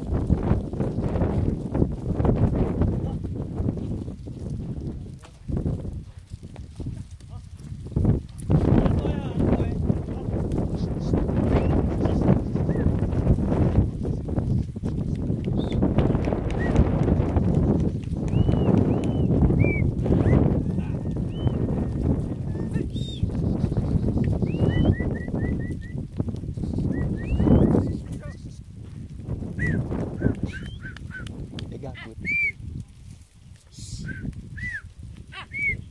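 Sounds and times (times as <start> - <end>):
goat hooves on dry dirt: 0.0 - 35.9
wind on microphone: 0.0 - 35.9
low rustle: 32.7 - 35.9
short whistled notes: 33.8 - 34.8.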